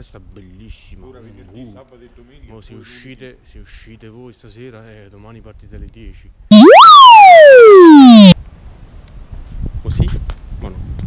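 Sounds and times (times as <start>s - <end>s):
buzzy electronic tone gliding down: 6.5s - 8.4s.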